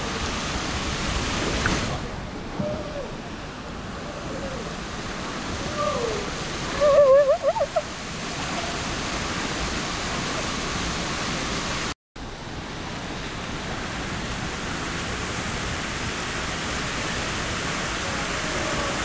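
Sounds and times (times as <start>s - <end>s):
water rushing down a slide: 0.0s - 19.0s.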